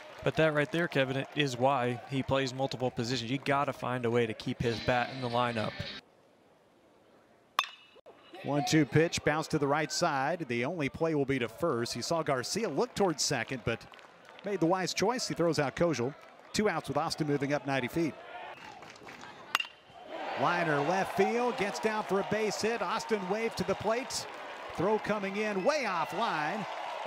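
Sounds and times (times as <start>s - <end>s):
faint crowd ambience: 0.1s - 27.0s
metal bat hitting ball ping: 7.6s - 8.0s, 19.5s - 19.8s.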